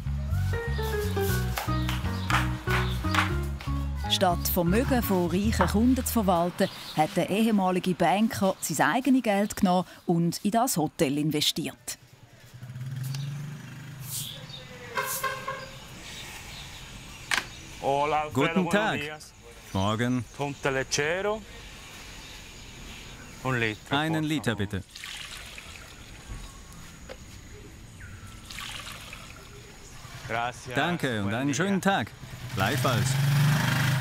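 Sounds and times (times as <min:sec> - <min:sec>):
motor vehicle engine running: 0:12.3 - 0:14.6.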